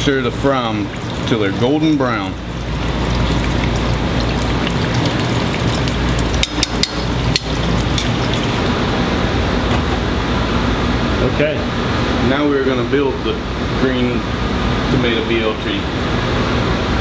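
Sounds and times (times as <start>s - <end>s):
steady low hum: 0.0s - 17.0s
oil sizzling with crackling pops: 2.5s - 8.7s.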